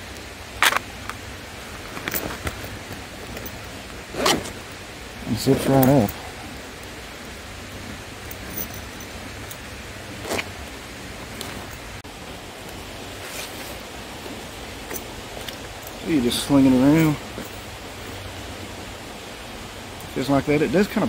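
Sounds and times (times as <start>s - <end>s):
outdoor background hiss: 0.0s - 21.0s
bag strap rustling and clicking: 0.6s - 4.8s, 7.8s - 10.6s, 11.2s - 11.9s, 12.7s - 16.0s.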